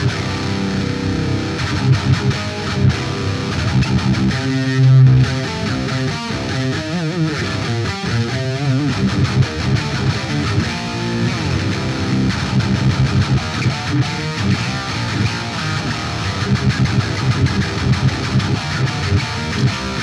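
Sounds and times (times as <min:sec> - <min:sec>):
distorted electric guitar: 0:00.0 - 0:20.0.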